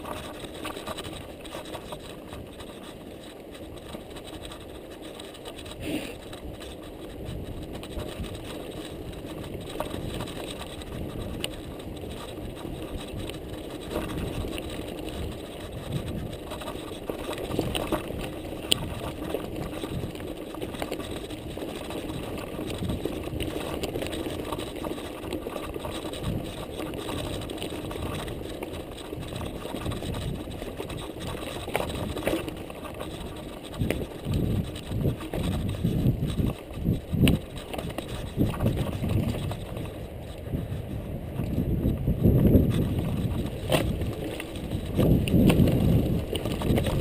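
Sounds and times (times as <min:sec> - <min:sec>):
bike rattling: 0:00.0 - 0:47.0
steady hum: 0:00.0 - 0:47.0
wind noise: 0:00.0 - 0:47.0.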